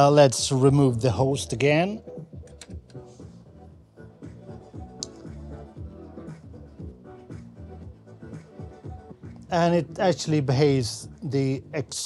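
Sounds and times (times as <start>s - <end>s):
quiet music with beat: 0.0s - 12.0s.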